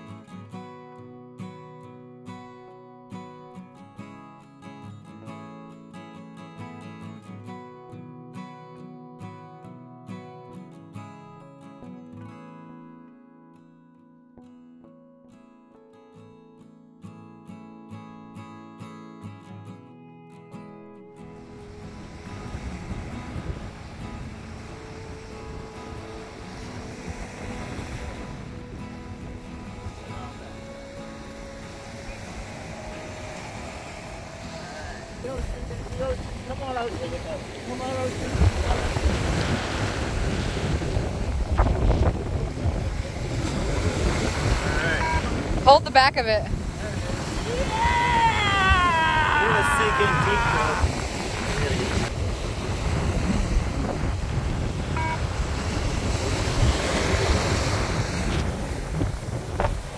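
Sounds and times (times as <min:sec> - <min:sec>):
acoustic guitar music: 0:00.0 - 0:59.9
ocean surf washing up: 0:21.3 - 0:59.9
wind on microphone: 0:21.4 - 0:59.9.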